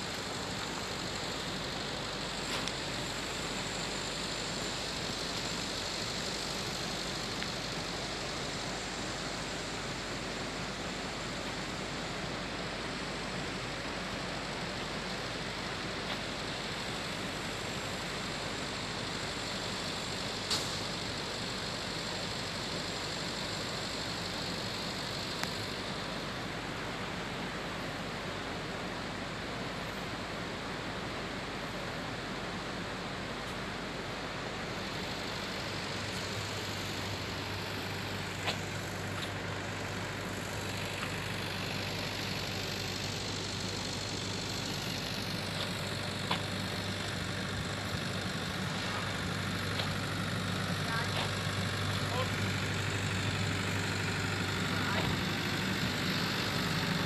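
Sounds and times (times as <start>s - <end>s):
diesel engine idling: 0.0s - 57.0s.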